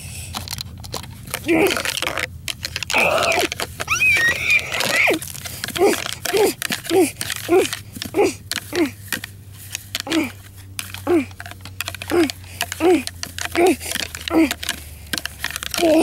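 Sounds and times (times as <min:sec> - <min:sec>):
plastic toys clicking together: 0:00.0 - 0:16.0
child making horse noises: 0:02.9 - 0:05.2, 0:05.8 - 0:09.0, 0:11.0 - 0:11.4, 0:15.8 - 0:16.0.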